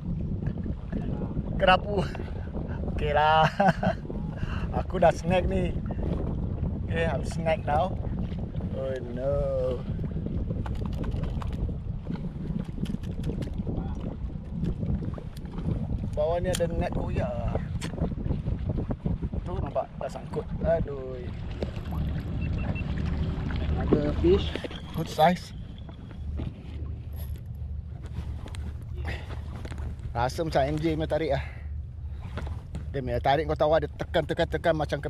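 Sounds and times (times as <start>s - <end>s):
water moving around kayak: 0.0s - 35.0s
waves slapping boat hull: 0.0s - 35.0s
wind buffeting microphone: 0.0s - 35.0s.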